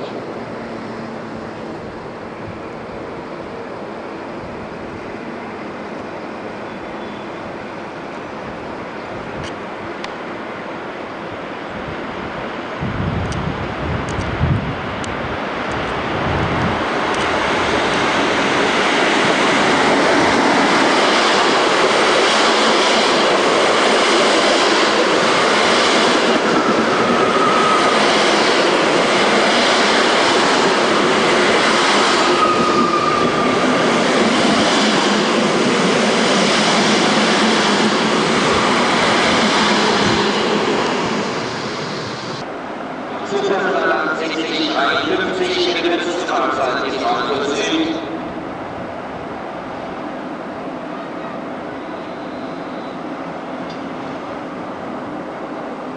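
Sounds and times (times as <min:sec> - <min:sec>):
train wheels rumbling on rails: 0:11.4 - 0:42.5.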